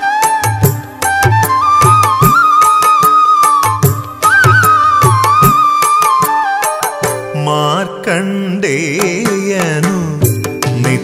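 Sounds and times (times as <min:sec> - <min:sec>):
devotional song melody: 0:00.0 - 0:11.0
low accompaniment: 0:00.4 - 0:06.3.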